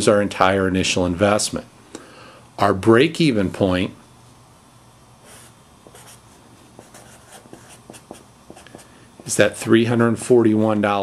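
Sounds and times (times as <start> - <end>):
marker scratching on paper: 5.2 - 9.4.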